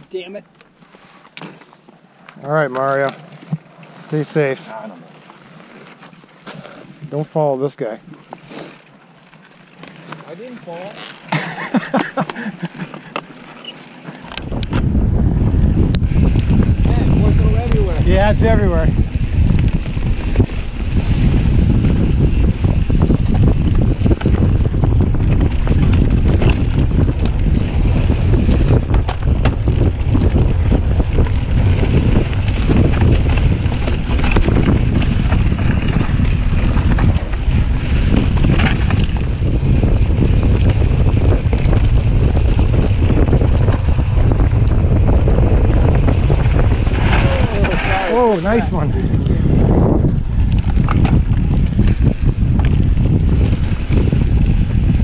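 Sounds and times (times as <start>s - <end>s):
tyres rumbling on dirt trail: 0.0s - 55.0s
bike clicks and rattles: 8.1s - 15.1s, 15.7s - 47.9s, 49.1s - 55.0s
wind buffeting microphone: 14.3s - 55.0s.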